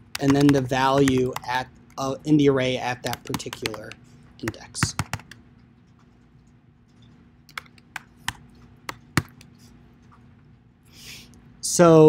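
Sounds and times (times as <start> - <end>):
faint steady hum: 0.0 - 12.0
keyboard keystrokes: 0.1 - 1.6, 3.0 - 5.4, 7.5 - 9.5.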